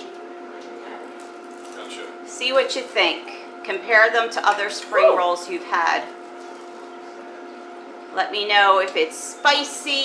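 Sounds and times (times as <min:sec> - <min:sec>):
steady two-tone hum: 0:00.0 - 0:10.0.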